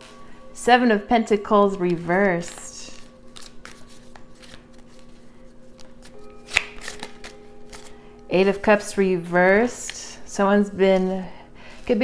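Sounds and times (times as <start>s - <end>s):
faint background music: 0.0s - 12.0s
cards shuffling: 1.9s - 8.3s
card snap: 5.8s - 8.0s.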